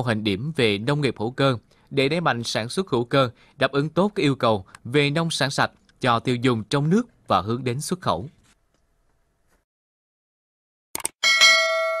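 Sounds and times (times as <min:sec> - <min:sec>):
notification bell chime: 0:11.2 - 0:12.0.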